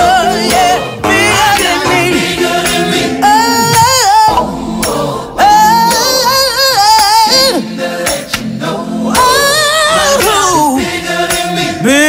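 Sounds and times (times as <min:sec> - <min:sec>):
woman singing gospel: 0:00.0 - 0:07.7.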